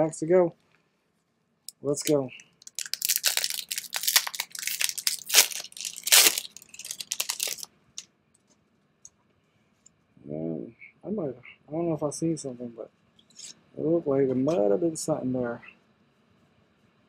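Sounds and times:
foil wrapper tearing and crinkling: 2.6s - 7.7s.

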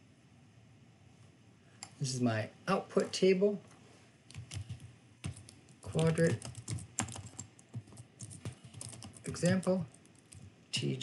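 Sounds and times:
keyboard typing: 4.3s - 10.6s.

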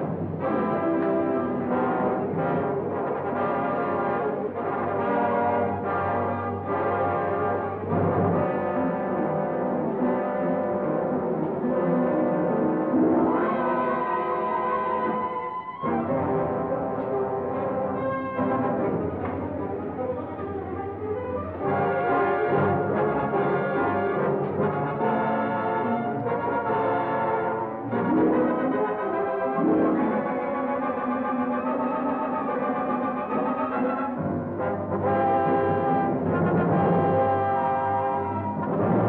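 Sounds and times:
orchestral music with brass chords: 0.0s - 39.0s.

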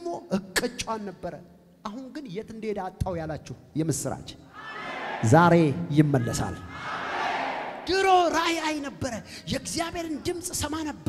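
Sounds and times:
man preaching into a microphone: 0.0s - 4.4s, 5.2s - 6.7s, 7.8s - 11.0s.

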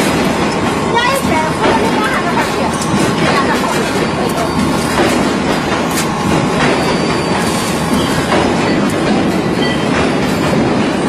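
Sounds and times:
loud mechanical rumbling: 0.0s - 11.0s.

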